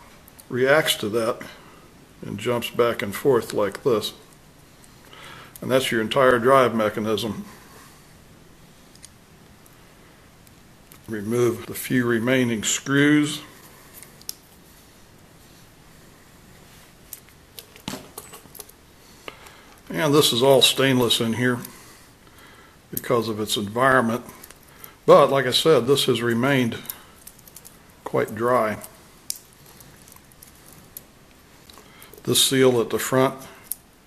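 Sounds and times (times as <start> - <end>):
low room noise: 0.0 - 34.0
faint clicks and rattles: 26.8 - 32.3.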